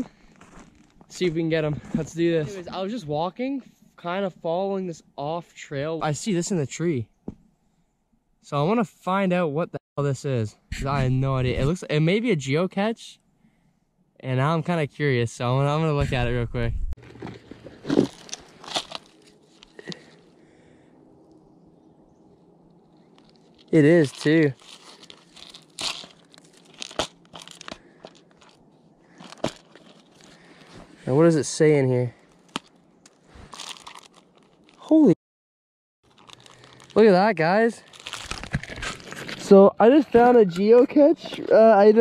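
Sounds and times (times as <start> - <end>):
plastic bag crinkling: 17.0 - 20.2, 23.0 - 30.7, 33.4 - 34.9, 36.1 - 39.5
plastic scraping against bark: 37.9 - 41.5.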